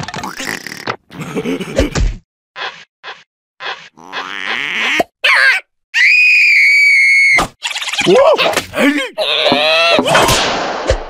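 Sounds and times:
cartoon grunts and squeaks: 4.0s - 5.7s, 7.2s - 10.3s
long high scream: 6.0s - 7.4s
wailing gibber: 7.6s - 10.1s.

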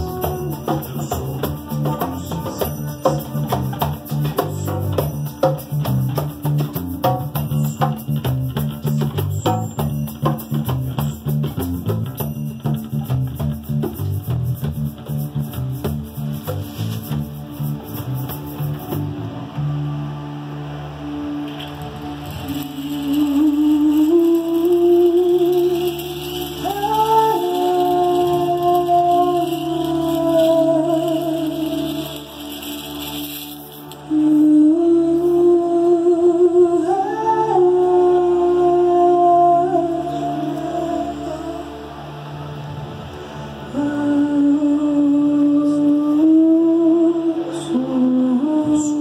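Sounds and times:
soft shaker: 0.0s - 19.2s, 22.1s - 35.6s
hand drums: 0.0s - 19.7s, 21.5s - 34.0s
acoustic bass guitar: 0.0s - 34.2s
wavering held melody notes: 0.0s - 49.0s.

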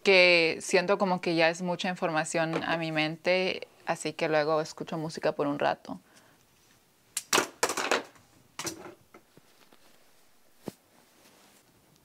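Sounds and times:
hair and satin rustling: 9.2s - 11.8s.

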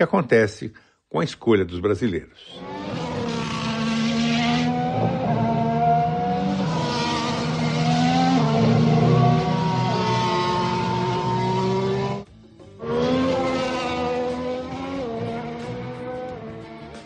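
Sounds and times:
racing car engines: 2.5s - 17.0s.

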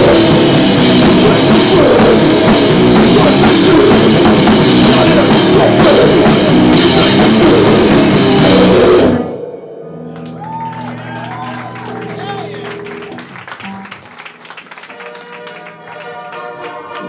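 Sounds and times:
grindcore band playing: 0.0s - 17.0s
crowd whooping and calling out: 10.1s - 14.1s.

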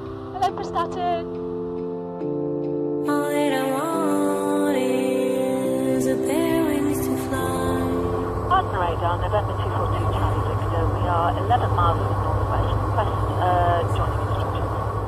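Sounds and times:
indistinct speech: 0.4s - 1.3s, 8.5s - 14.9s.

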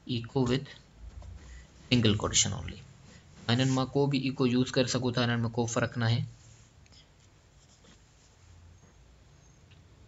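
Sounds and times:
man speaking: 0.0s - 0.9s, 1.8s - 6.4s
low room noise: 0.0s - 10.0s.

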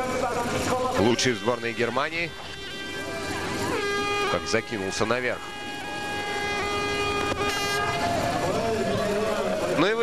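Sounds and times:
crowd noise: 0.0s - 10.0s
higher horn blast: 0.5s - 10.0s
horns holding steady tone: 0.5s - 10.0s.

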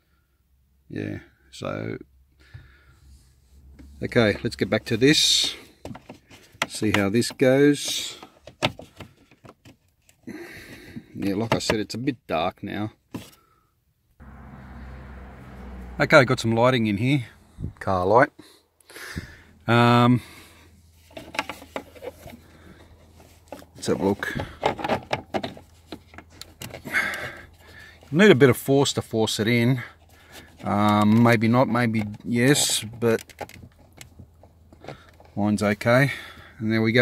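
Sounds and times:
plastic clicks and scraping: 21.0s - 28.1s, 31.9s - 35.4s.

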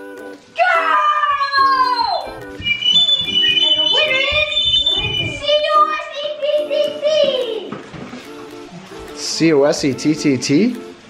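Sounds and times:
background music with repeated notes: 0.0s - 11.0s
girl's high-pitched squeal: 0.6s - 6.1s.

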